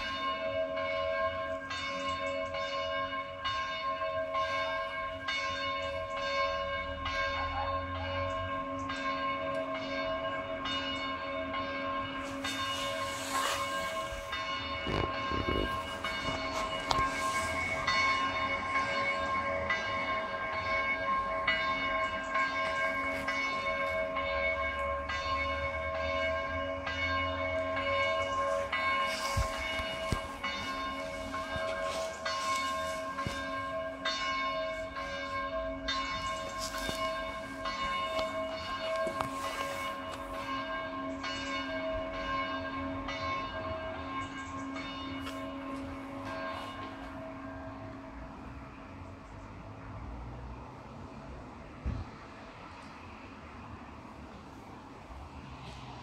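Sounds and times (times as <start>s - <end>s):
church bells pealing: 0.0s - 51.7s.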